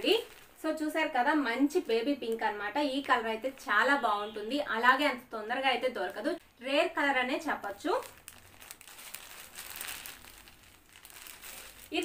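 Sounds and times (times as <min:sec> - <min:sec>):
fabric rustling and crinkling: 0:00.0 - 0:04.0, 0:07.5 - 0:12.0.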